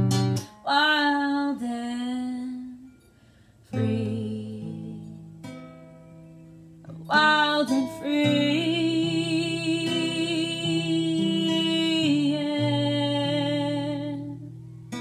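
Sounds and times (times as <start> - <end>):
acoustic guitar strumming: 0.0 - 2.0, 3.7 - 15.0
woman singing: 0.4 - 3.0, 3.7 - 5.3, 6.9 - 14.6.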